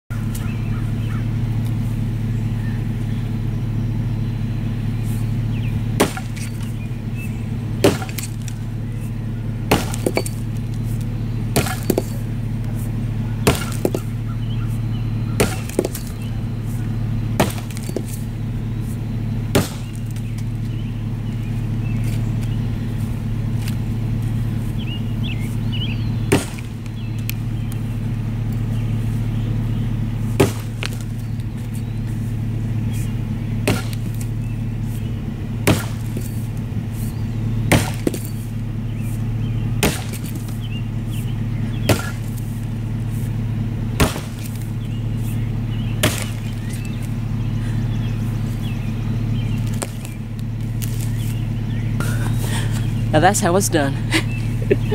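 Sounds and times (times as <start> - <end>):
low hum: 0.0 - 54.9
axe chopping log: 6.0 - 6.8, 7.8 - 8.8, 9.6 - 12.8, 13.4 - 14.2, 15.4 - 16.3, 17.4 - 18.3, 19.5 - 20.6, 26.2 - 27.5, 30.3 - 31.8, 32.9 - 36.4, 37.0 - 38.5, 39.7 - 40.6, 41.8 - 42.5, 43.9 - 47.2, 49.6 - 51.4.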